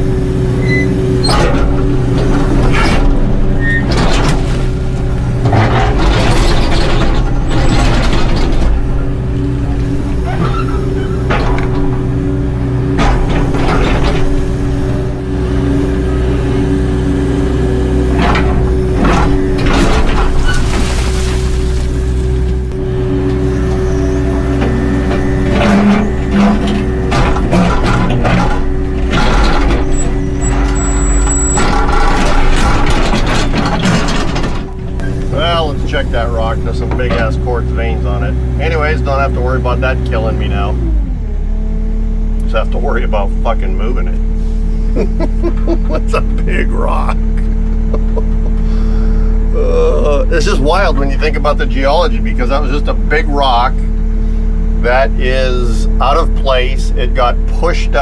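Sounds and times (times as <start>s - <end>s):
excavator diesel engine running: 0.0s - 58.0s
rock and dirt crashing down: 19.6s - 22.5s
bucket scraping into dirt: 20.2s - 22.2s.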